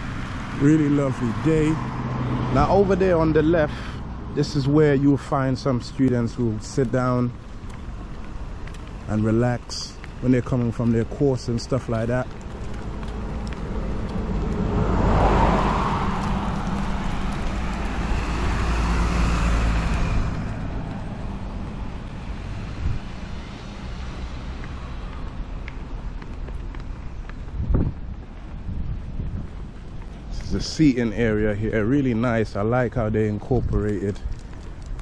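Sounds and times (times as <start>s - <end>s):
car passing by: 0.0s - 6.3s, 13.0s - 26.2s
low traffic noise: 0.0s - 35.0s.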